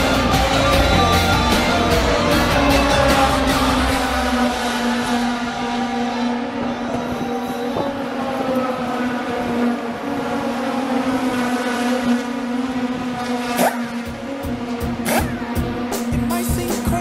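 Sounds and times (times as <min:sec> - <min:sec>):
race car engines high note: 0:00.0 - 0:17.0.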